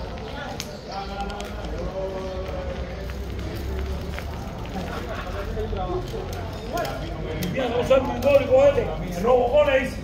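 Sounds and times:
footsteps on street: 0:00.0 - 0:10.0
people talking: 0:00.0 - 0:10.0.

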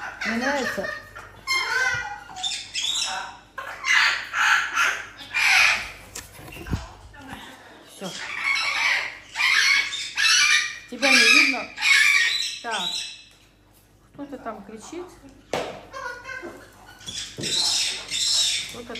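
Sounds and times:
parrot squawking: 0:00.0 - 0:06.0, 0:08.0 - 0:13.3, 0:15.9 - 0:18.9.

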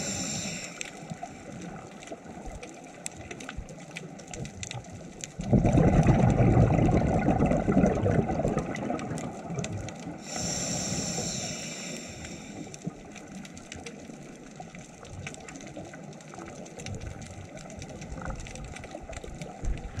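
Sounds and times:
regulator hissing on inhale: 0:00.0 - 0:01.4, 0:10.1 - 0:12.9
exhaled bubbles rumbling: 0:00.0 - 0:11.5, 0:12.3 - 0:20.0
faint crackling clicks: 0:00.0 - 0:20.0.

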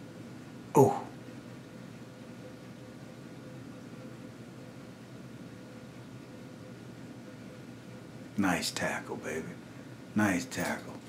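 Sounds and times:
low steady hiss: 0:00.0 - 0:11.0
person speaking: 0:00.8 - 0:01.2.

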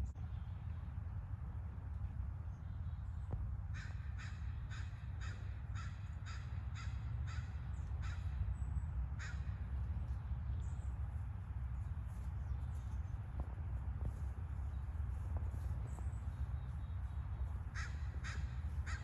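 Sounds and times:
steady low rumble: 0:00.0 - 0:19.0
bird calling: 0:15.6 - 0:19.0.

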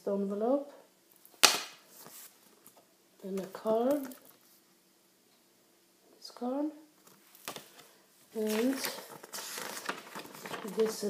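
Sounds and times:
paper card snapping: 0:01.4 - 0:01.8
paper rustling: 0:07.0 - 0:11.0.

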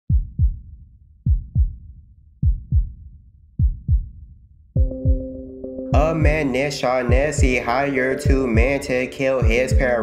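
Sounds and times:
deep bass thumps: 0:00.1 - 0:05.4, 0:06.0 - 0:06.5, 0:07.1 - 0:07.6, 0:08.3 - 0:08.8, 0:09.4 - 0:10.0.

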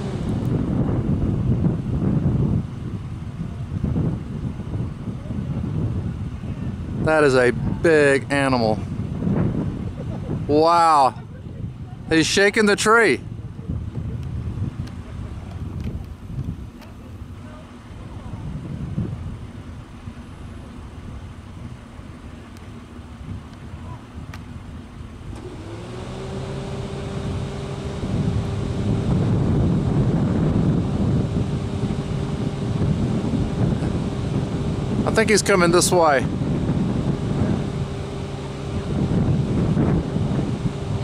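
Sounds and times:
faint outdoor rumble: 0:00.0 - 0:41.0
vehicle engine humming: 0:00.0 - 0:41.0.

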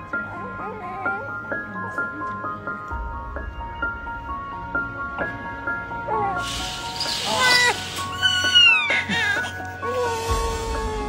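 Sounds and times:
soft background music: 0:00.0 - 0:11.0
baby crying: 0:07.0 - 0:11.0.

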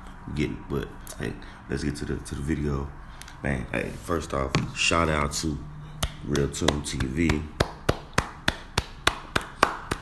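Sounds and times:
hand clapping: 0:06.0 - 0:10.0.

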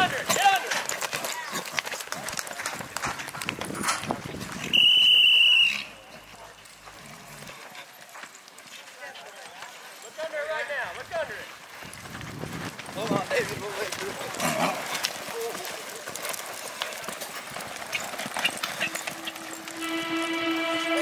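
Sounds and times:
horse hoofbeats on dirt: 0:00.0 - 0:21.0
voices shouting: 0:18.8 - 0:21.0
loud high steady tone: 0:19.1 - 0:21.0.

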